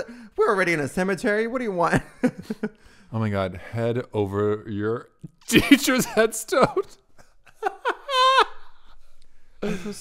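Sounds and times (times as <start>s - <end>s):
man laughing in falsetto: 7.6s - 8.9s.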